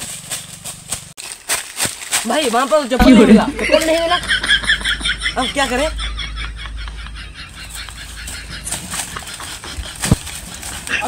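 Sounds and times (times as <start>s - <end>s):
running footsteps on dry leaves: 0.0s - 3.0s.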